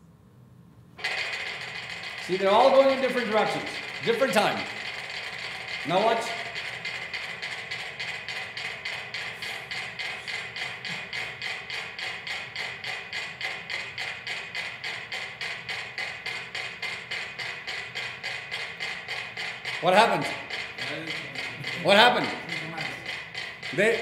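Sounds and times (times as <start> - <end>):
metronomes ticking: 1.0 - 24.0.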